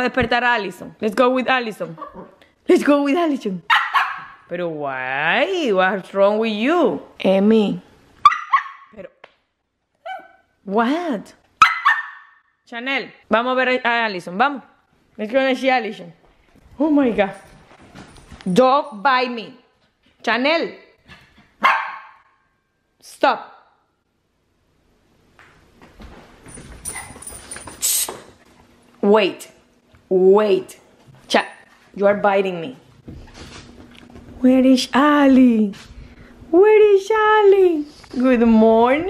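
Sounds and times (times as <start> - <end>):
puppy yipping: 3.7 - 4.4, 8.2 - 9.0, 10.0 - 10.5, 11.6 - 12.4, 21.6 - 22.2
puppy scuffling on tile floor: 16.2 - 18.8, 25.4 - 28.8, 32.9 - 34.6.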